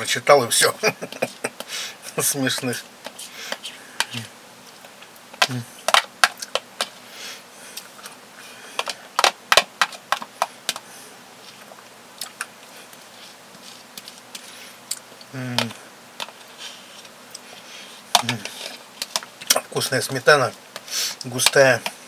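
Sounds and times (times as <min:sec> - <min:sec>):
eating sounds: 0:10.0 - 0:19.8.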